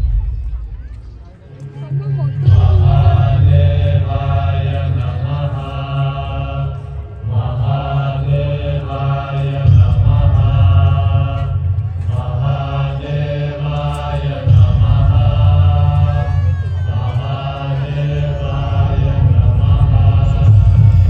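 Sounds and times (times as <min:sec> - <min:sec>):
chanted mantra singing: 0:01.7 - 0:21.0
deep steady drone: 0:14.5 - 0:21.0.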